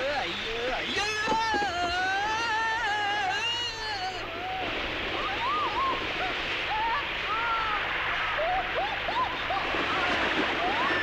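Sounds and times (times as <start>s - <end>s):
heavy rain on trees and rocks: 0.0s - 11.0s.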